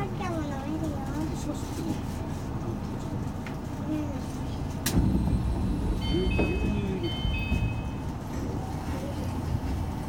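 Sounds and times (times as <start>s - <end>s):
low rumble of train cabin: 0.0s - 10.0s.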